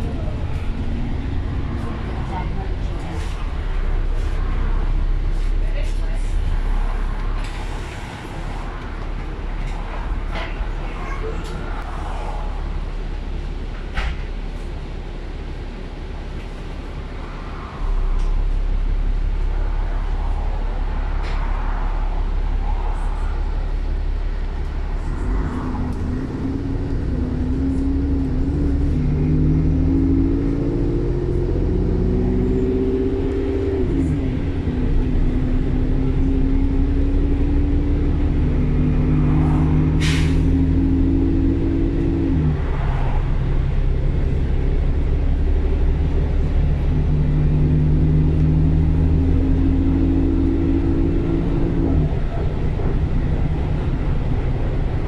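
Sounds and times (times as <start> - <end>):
diesel bus engine accelerating: 0.0 - 55.0.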